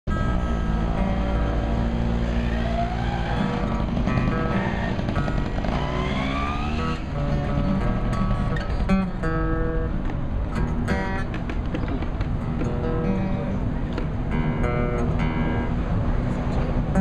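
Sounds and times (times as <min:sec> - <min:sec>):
acoustic guitar playing: 0:00.1 - 0:17.0
vehicle engine accelerating: 0:00.2 - 0:09.5.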